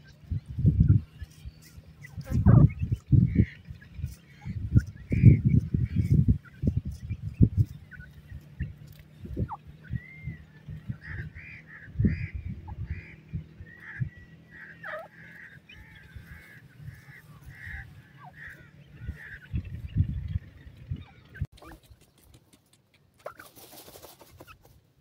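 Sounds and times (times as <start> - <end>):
birds calling: 0.0 - 24.6.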